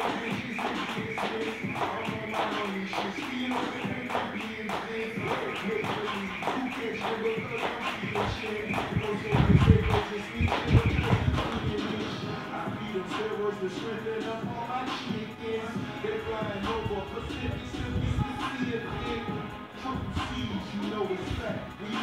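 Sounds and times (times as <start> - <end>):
music with vocals: 0.0 - 22.0.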